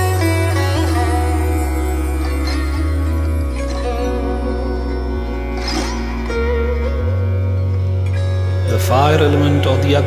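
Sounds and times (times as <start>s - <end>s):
sitar playing: 0.0s - 10.0s.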